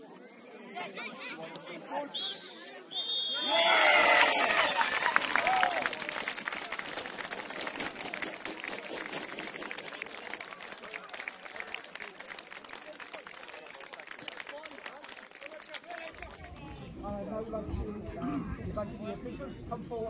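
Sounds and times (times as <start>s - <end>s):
referee's whistle: 2.1s - 3.6s
crowd shouting and cheering: 2.9s - 10.4s
people clapping: 3.4s - 16.9s.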